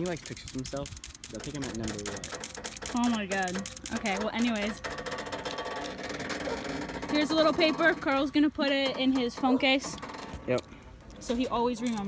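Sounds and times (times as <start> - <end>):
riding mower engine running: 0.0 - 11.2.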